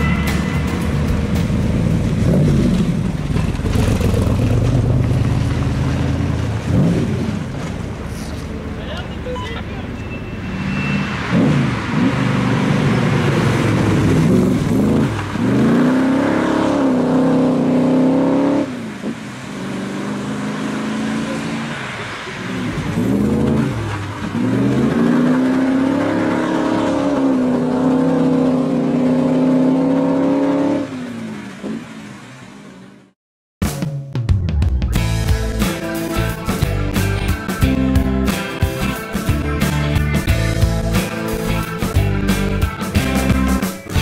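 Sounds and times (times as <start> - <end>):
car engine revving hard: 0.0 - 7.6, 11.1 - 32.3.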